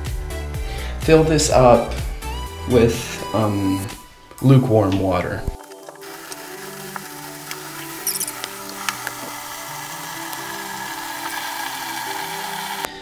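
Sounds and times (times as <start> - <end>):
background music with held notes: 0.0 - 13.0
bathtub faucet running: 5.6 - 13.0.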